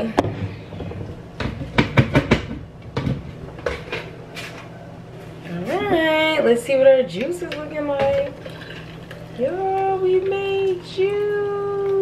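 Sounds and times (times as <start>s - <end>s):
kitchen items knocking and clinking: 0.2s - 4.5s.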